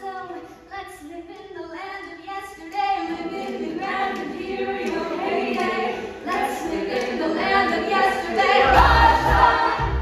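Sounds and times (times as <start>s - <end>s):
young voices singing together: 0.0s - 10.0s.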